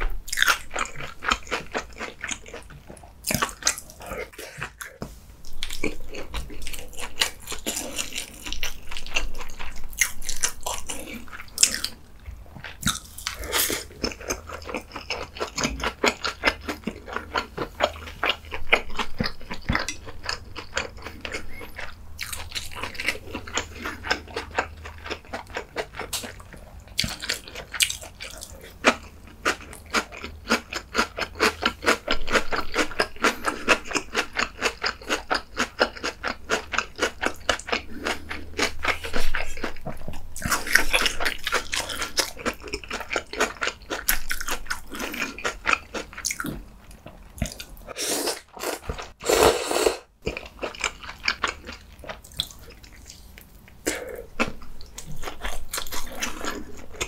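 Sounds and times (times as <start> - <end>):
crunchy chewing: 0.0 - 57.0
wet mouth sounds: 52.2 - 57.0.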